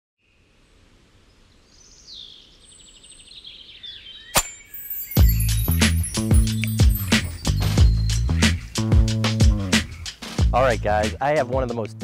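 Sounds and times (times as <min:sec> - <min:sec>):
small birds chirping: 0:00.2 - 0:10.4
bird glide and rapid trill: 0:04.4 - 0:08.8.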